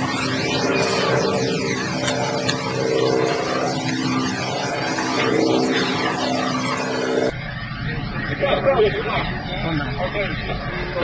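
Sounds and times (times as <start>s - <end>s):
outdoor ambience: 0.0s - 11.0s.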